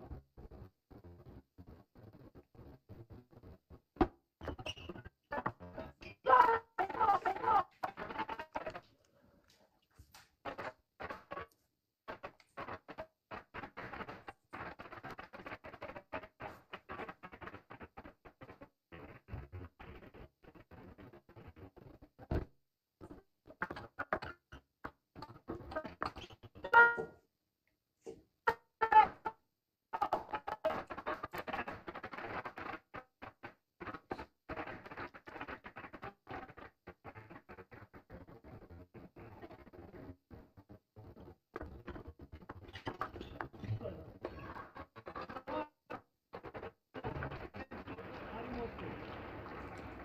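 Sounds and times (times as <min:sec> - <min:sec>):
stuttering broken broadcast audio: 0:00.0 - 0:27.1, 0:30.0 - 0:50.0.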